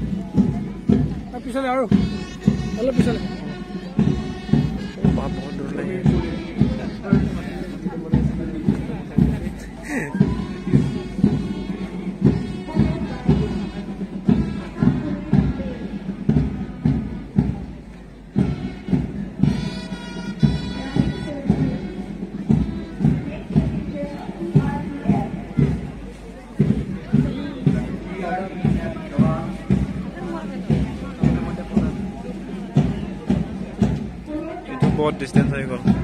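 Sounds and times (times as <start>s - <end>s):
bass drum beat: 0.0s - 36.0s
marching band music: 0.0s - 36.0s.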